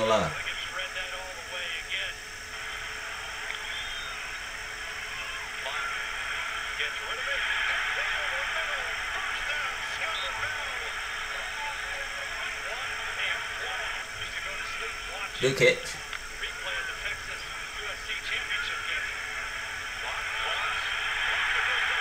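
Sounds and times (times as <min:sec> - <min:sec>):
commentators talking: 0:00.0 - 0:02.2, 0:06.8 - 0:22.0
stadium crowd noise: 0:00.0 - 0:22.0.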